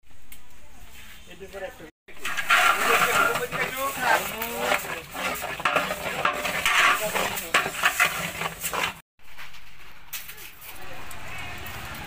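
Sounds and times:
metal ladle scraping a pot: 0:02.1 - 0:09.0.

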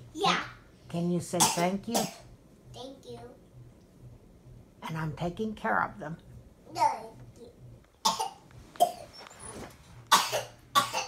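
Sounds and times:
person coughing: 0:08.1 - 0:09.1, 0:10.1 - 0:11.0.

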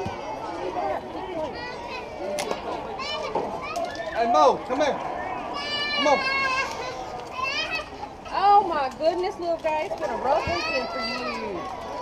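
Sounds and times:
girls talking and calling out: 0:00.0 - 0:04.2, 0:05.0 - 0:12.0.

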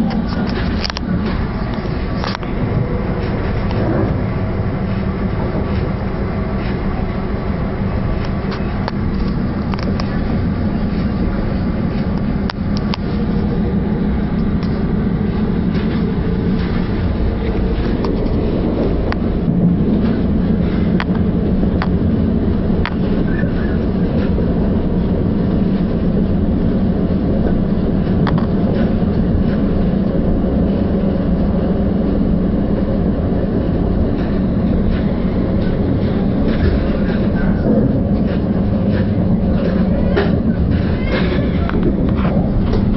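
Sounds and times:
low hum: 0:00.0 - 0:42.9
train wheels rumbling on rail: 0:00.0 - 0:42.9.

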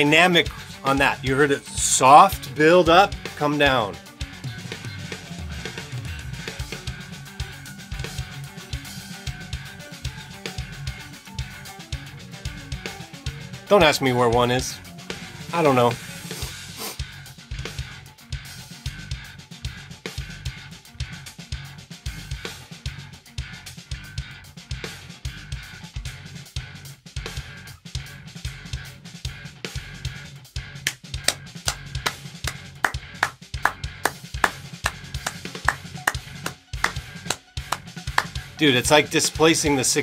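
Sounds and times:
fast drum kit playing: 0:00.0 - 0:11.4, 0:12.1 - 0:17.0, 0:30.8 - 0:40.0
recorded metal band track: 0:00.0 - 0:32.2.

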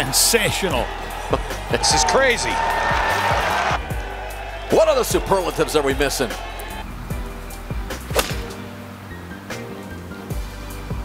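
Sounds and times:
background music with steady beat: 0:00.0 - 0:11.0
golf club hitting ball: 0:08.0 - 0:08.6.

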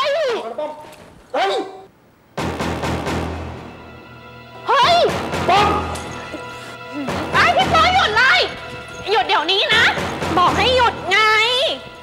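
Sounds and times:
sudden hit: 0:02.4 - 0:04.2
background music with held tones: 0:02.4 - 0:12.0.

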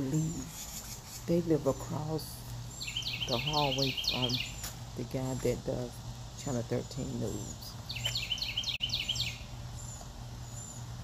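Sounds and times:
birds chirping: 0:00.0 - 0:11.0
steady low hum: 0:00.0 - 0:11.0.

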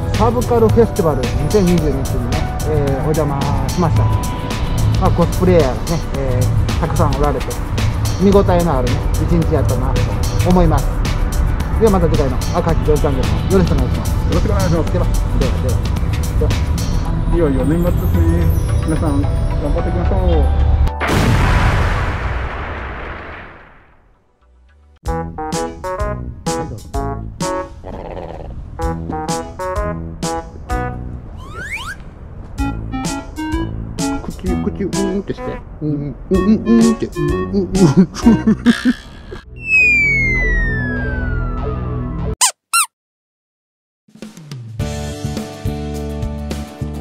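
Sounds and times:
background music: 0:00.0 - 0:21.2, 0:24.5 - 0:27.8, 0:32.6 - 0:35.6, 0:36.3 - 0:38.8
explosion blast: 0:21.0 - 0:24.1
short squeaky chirps: 0:31.4 - 0:32.0, 0:39.6 - 0:40.8, 0:42.4 - 0:43.0
whistle-like tone sliding down: 0:31.4 - 0:32.0, 0:39.6 - 0:42.9.

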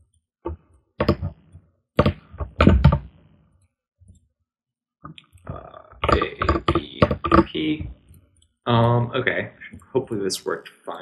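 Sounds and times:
keyboard typing: 0:05.4 - 0:09.9.

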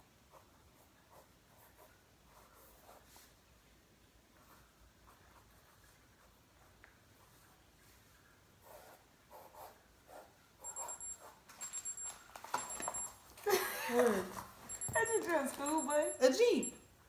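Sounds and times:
timer alarm beeping: 0:10.6 - 0:13.2, 0:14.7 - 0:16.9.

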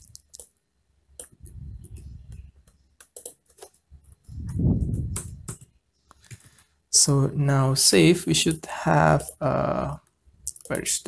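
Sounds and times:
keyboard keystrokes and clicks: 0:00.0 - 0:06.6
low muffled rumble: 0:04.3 - 0:05.6.

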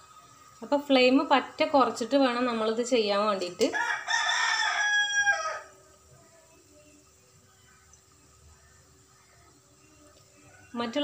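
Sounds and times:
woman speaking: 0:00.6 - 0:03.8, 0:10.7 - 0:11.0
rooster crowing: 0:03.7 - 0:05.8.

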